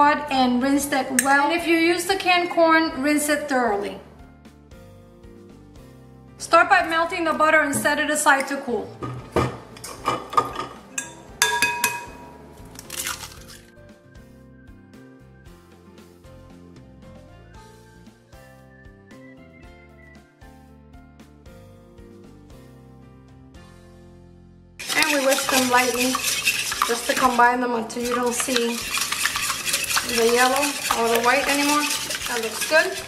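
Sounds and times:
quiet background music: 0:00.0 - 0:33.0
eggs cracking on glass bowl: 0:11.6 - 0:13.6, 0:24.8 - 0:27.4, 0:28.1 - 0:33.0.

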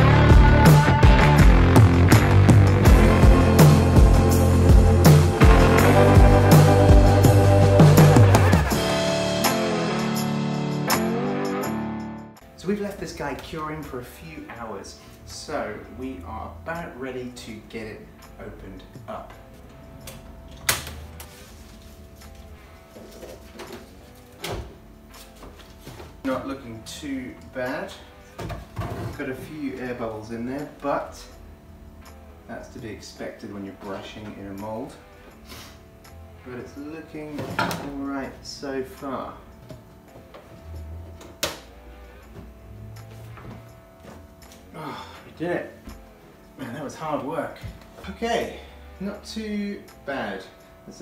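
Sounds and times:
faint background music: 0:02.8 - 0:51.0.

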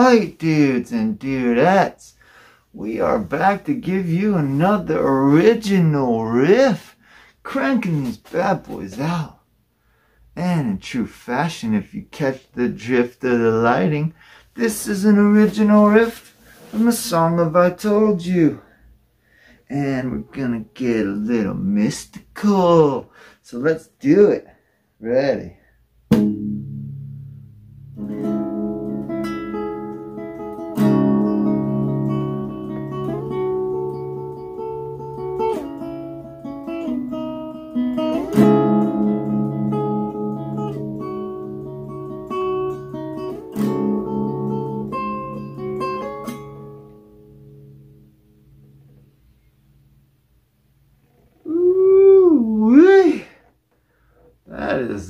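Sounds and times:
acoustic guitar riff: 0:19.7 - 0:22.0, 0:26.1 - 0:49.4
wavering voice sliding in pitch: 0:51.3 - 0:53.3.

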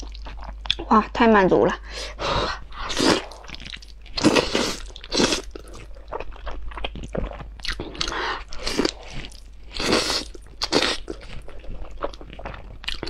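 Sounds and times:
wet chewing: 0:02.7 - 0:13.0
slurping noodles: 0:02.8 - 0:03.6.

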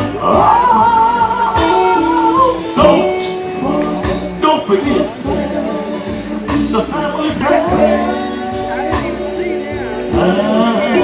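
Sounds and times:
bass: 0:00.0 - 0:11.0
drums: 0:00.0 - 0:11.0
electric guitar: 0:00.0 - 0:11.0.

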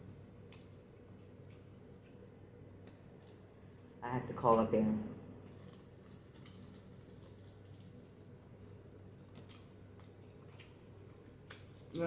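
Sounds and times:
low steady hum: 0:00.0 - 0:12.0
chewing with wet mouth clicks: 0:00.4 - 0:03.5, 0:09.2 - 0:12.0.

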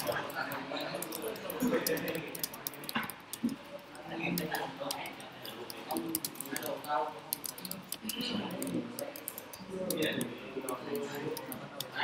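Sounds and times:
computer keyboard typing: 0:00.0 - 0:12.0.

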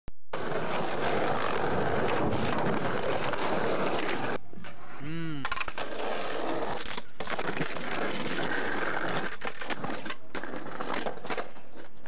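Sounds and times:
skateboard wheels rolling on pavement: 0:00.3 - 0:12.0
person calling out: 0:05.0 - 0:05.6.

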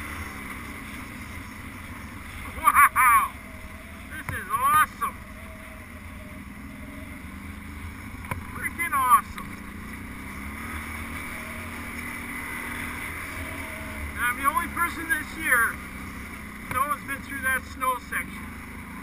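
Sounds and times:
quad bike engine running: 0:00.0 - 0:19.0.

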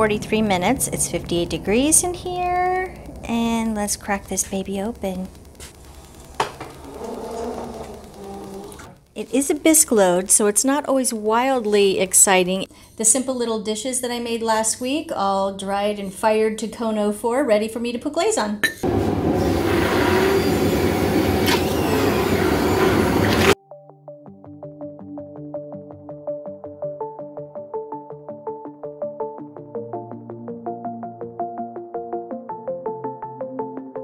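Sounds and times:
electric stick blender running: 0:04.0 - 0:09.1, 0:18.8 - 0:23.6
brick lid rubbing: 0:05.6 - 0:09.0.

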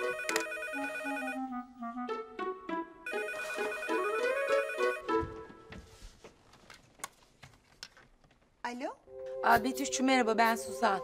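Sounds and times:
electronic telephone ringtone: 0:00.0 - 0:01.6, 0:03.1 - 0:05.1.

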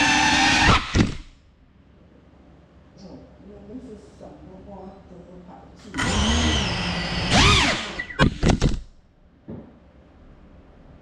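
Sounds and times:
drone motors whining: 0:00.0 - 0:01.2, 0:06.0 - 0:08.8.

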